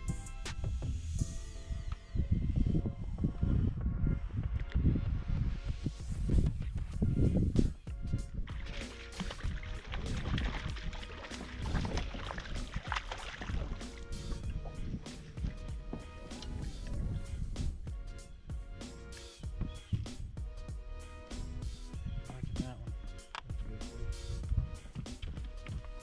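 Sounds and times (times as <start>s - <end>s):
background music: 0.0s - 26.0s
wind rumble on microphone: 0.6s - 18.7s, 19.4s - 20.5s, 21.9s - 26.0s
rustling and splashing noise: 8.3s - 16.9s.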